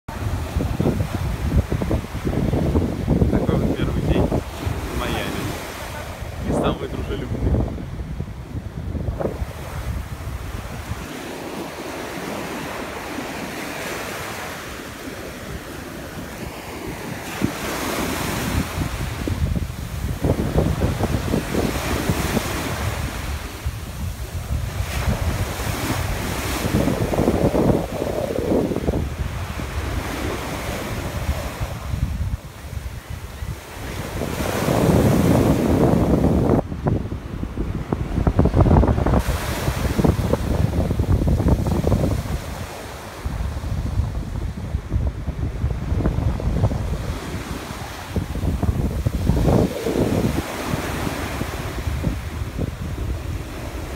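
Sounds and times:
ocean surf breaking: 0.1 - 53.9
wind buffeting microphone: 0.1 - 53.9.

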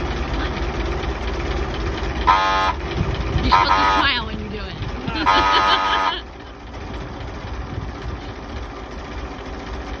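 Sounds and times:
car engine idling: 0.0 - 10.0
car horn blast: 2.2 - 2.8, 3.5 - 4.2, 5.2 - 6.2.

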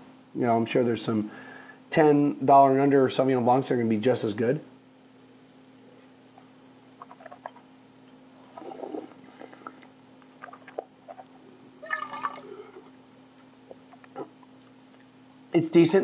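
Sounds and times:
liquid pouring and sloshing: 8.4 - 9.8, 10.4 - 13.0.

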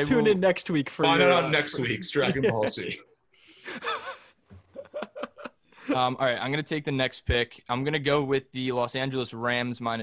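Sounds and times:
men laughing: 1.3 - 3.0, 3.6 - 6.2.

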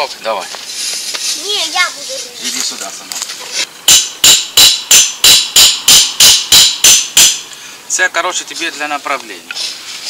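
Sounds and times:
hammer striking metal stake: 3.9 - 7.5.

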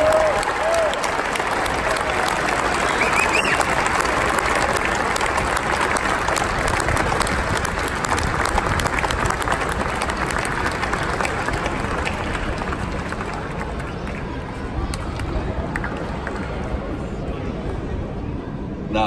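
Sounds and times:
crowd whooping: 0.0 - 5.0
crowd applauding: 0.0 - 16.8.

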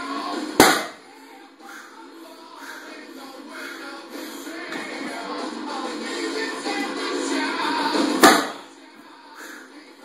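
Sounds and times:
background music: 0.0 - 10.0
barbell thud on wooden blocks: 0.6 - 1.0, 8.2 - 8.6.

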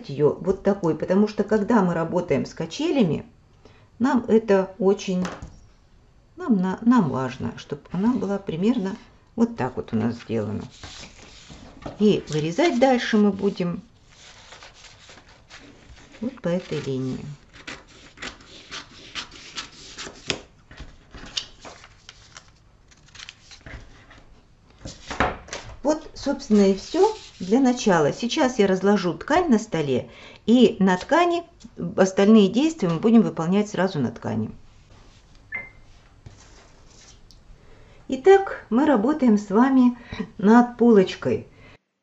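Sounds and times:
scissors snipping paper: 14.2 - 20.5.

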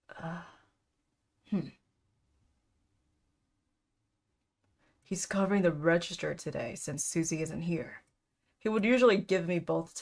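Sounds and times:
woman's breathy voice: 0.0 - 0.7.

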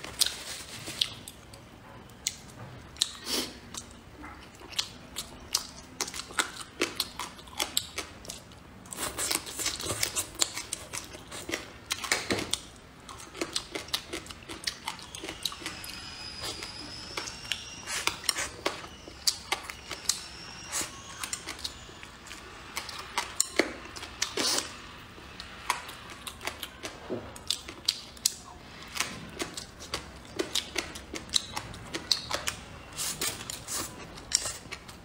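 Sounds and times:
wet chewing and mouth smacks: 25.6 - 35.0.

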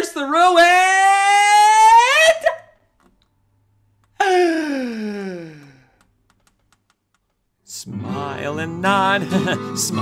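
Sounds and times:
man's descending wailing cry: 0.6 - 2.6
acoustic guitar: 7.7 - 10.0
person singing: 7.7 - 10.0.

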